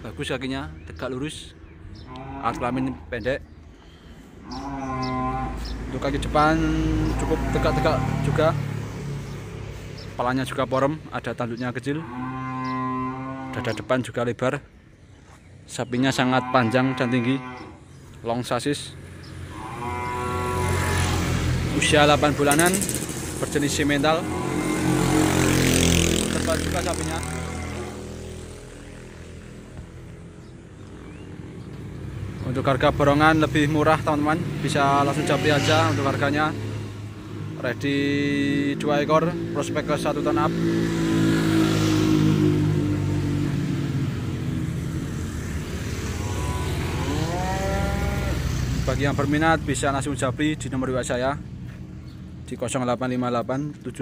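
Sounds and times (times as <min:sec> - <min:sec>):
vehicle engine hum: 0:00.0 - 0:11.9, 0:17.8 - 0:54.0
bull mooing: 0:02.0 - 0:03.3, 0:04.4 - 0:05.8, 0:06.4 - 0:08.6, 0:11.8 - 0:13.9, 0:16.2 - 0:17.8, 0:19.5 - 0:21.2, 0:23.6 - 0:28.3, 0:34.6 - 0:36.5, 0:46.0 - 0:48.7.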